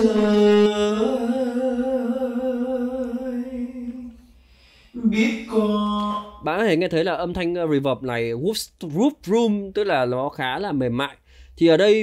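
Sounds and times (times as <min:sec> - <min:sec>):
sung vocal note with reverb: 0:00.0 - 0:04.2, 0:05.0 - 0:06.5.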